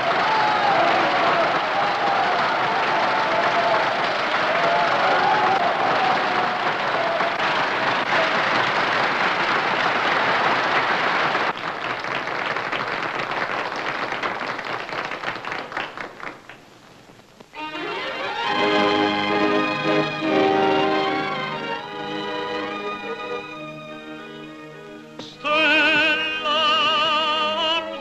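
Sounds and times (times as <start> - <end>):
audience applauding: 0.0 - 16.8.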